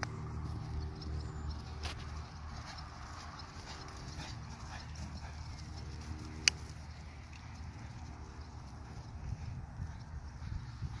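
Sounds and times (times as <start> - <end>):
hooves thudding on grass: 0.0 - 11.0
steady low rumble: 0.0 - 11.0.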